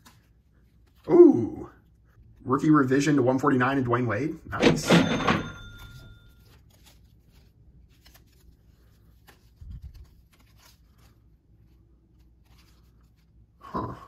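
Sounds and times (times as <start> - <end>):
trading cards in sleeves rustling: 0.0 - 1.1, 5.2 - 13.6
short bell-like ding: 4.9 - 6.4.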